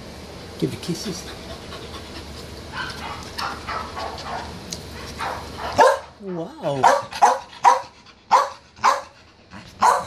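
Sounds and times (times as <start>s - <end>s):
dog barking: 2.7s - 6.2s, 6.8s - 9.2s, 9.8s - 10.0s.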